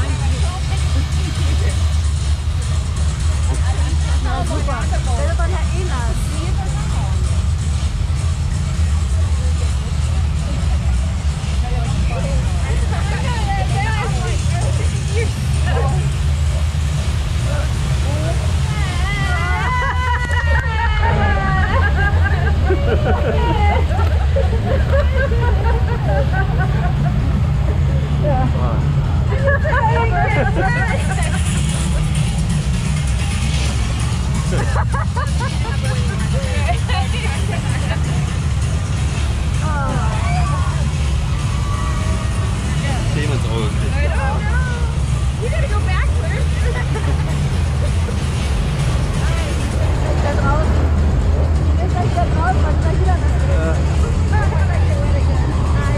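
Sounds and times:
low rumble of wind and water: 0:00.0 - 0:55.9
riders chattering and laughing: 0:00.0 - 0:55.9.

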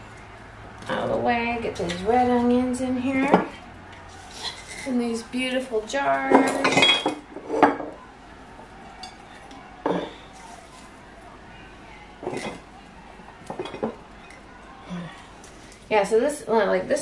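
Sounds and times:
glass jars clinking: 0:06.2 - 0:08.0, 0:08.9 - 0:10.4, 0:12.2 - 0:12.8, 0:13.4 - 0:14.5
metal bowl clinks: 0:06.3 - 0:08.0.

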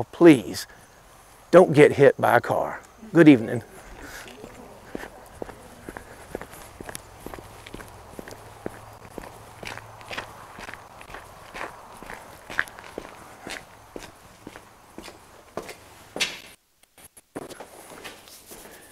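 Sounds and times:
footsteps on grass and gravel: 0:03.5 - 0:16.3.

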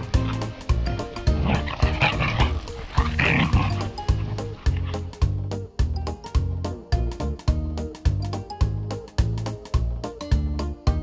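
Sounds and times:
huskies vocalizing in play: 0:00.0 - 0:05.3
background music with steady beat: 0:00.0 - 0:11.0.

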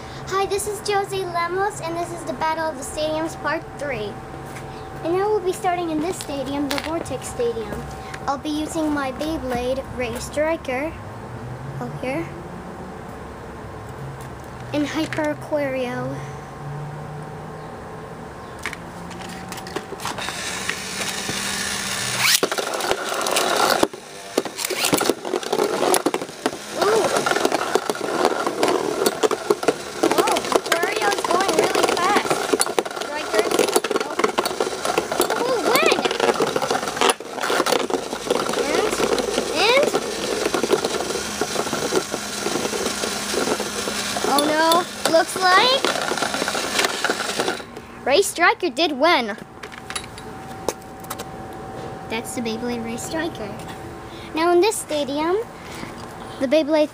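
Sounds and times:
spinning tops scraping plastic: 0:19.0 - 0:47.8
low hum: 0:48.7 - 0:56.4.

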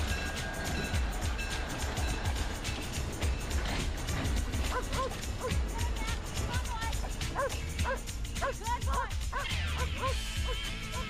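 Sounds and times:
background music with low beat: 0:00.0 - 0:11.0
dog barking: 0:04.7 - 0:05.6, 0:07.4 - 0:11.0.

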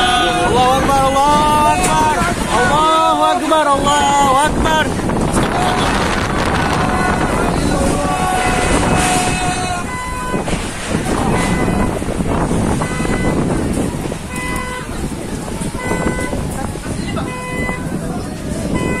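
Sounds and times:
wind blowing on microphone: 0:00.0 - 0:19.0
horn-like toots: 0:05.4 - 0:13.6.

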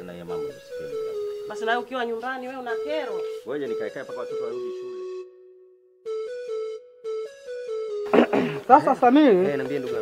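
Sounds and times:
held synthesizer notes: 0:00.0 - 0:09.0.

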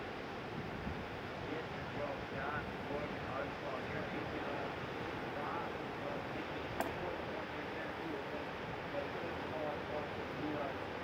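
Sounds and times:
wind: 0:00.0 - 0:11.0
faint voices talking: 0:01.4 - 0:11.0
sharp click: 0:06.8 - 0:07.0.

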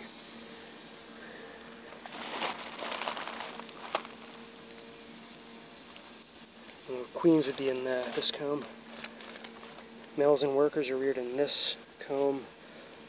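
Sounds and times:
paper nest crinkling: 0:01.9 - 0:04.4, 0:07.2 - 0:09.9.

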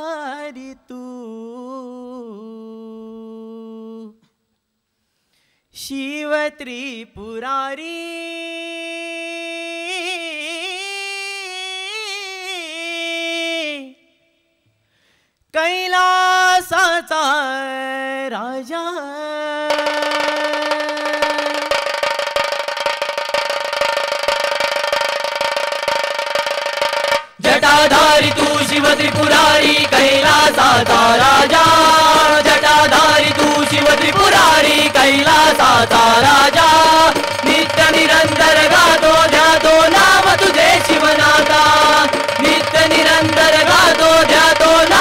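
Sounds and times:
man singing a long note: 0:15.6 - 0:21.8
clay-pot drums beating: 0:19.7 - 0:45.0
cymbals: 0:19.7 - 0:45.0.

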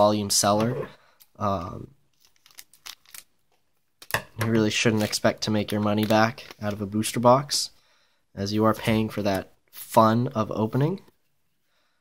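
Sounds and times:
packaging crinkling: 0:02.1 - 0:06.9.

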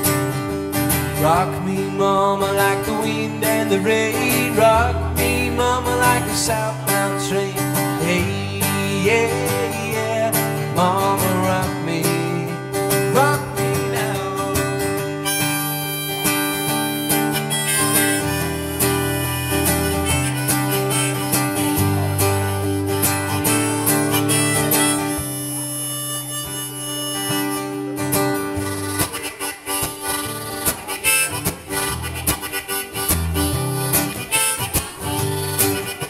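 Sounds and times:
strummed acoustic guitar: 0:00.0 - 0:36.0
harmonica solo: 0:13.1 - 0:36.0.

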